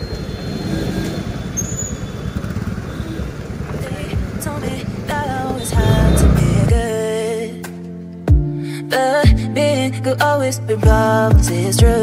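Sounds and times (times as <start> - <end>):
motorcycles passing: 0.0 - 7.0
street traffic rumble: 0.0 - 7.2.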